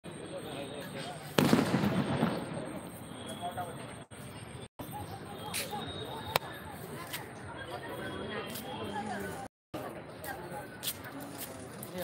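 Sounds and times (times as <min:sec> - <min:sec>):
firecracker bang: 0:01.0 - 0:03.7
murmur of voices: 0:04.8 - 0:12.0.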